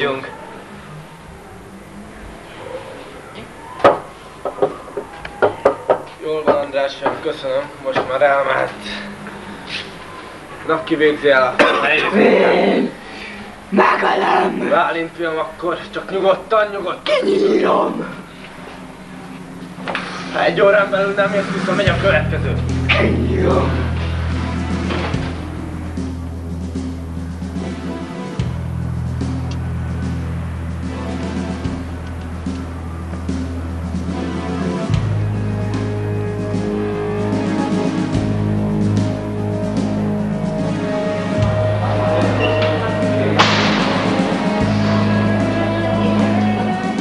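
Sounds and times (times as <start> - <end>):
background music with low bass: 19.0 - 47.0
sharp knocks: 43.4 - 44.7.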